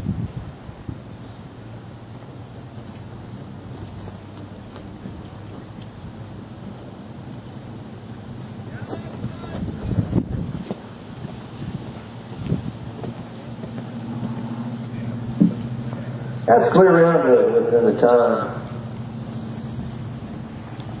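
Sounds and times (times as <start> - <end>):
wind on microphone: 0.0 - 16.4, 18.7 - 21.0
faint low hum: 1.1 - 21.0
dull thumps: 8.9 - 16.0.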